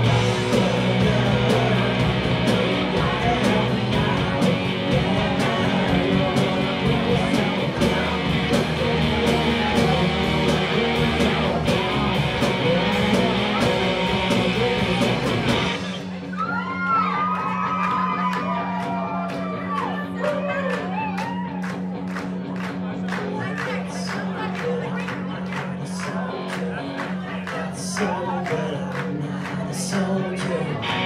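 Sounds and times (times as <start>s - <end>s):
steady drum beat: 0.0s - 20.0s
live rock band playing: 0.0s - 31.0s.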